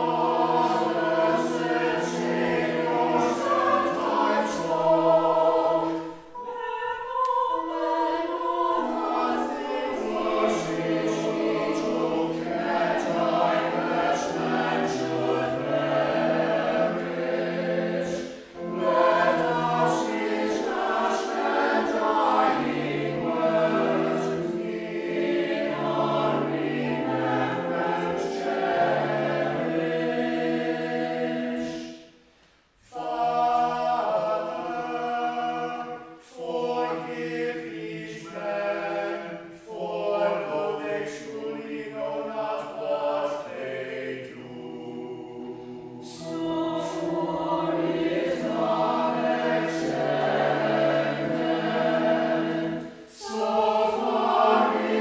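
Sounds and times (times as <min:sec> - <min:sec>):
mixed choir singing: 0:00.0 - 0:32.2, 0:32.8 - 0:55.0.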